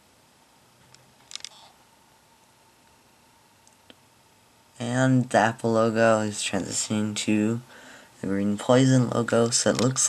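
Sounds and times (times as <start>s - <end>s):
faint steady tone: 0.0s - 10.0s
low hiss: 0.0s - 10.0s
sharp clicks: 0.9s - 1.6s.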